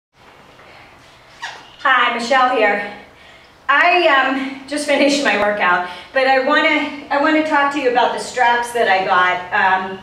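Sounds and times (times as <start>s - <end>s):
faint background noise: 0.2s - 10.0s
woman speaking: 1.8s - 3.1s, 3.7s - 10.0s.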